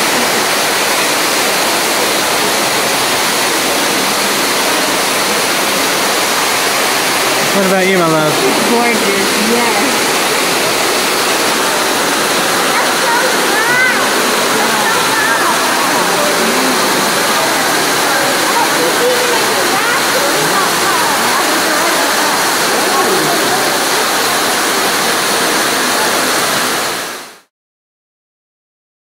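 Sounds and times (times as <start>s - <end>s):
faint voices: 0.0s - 27.2s
waterfall pouring into pool: 0.0s - 27.5s.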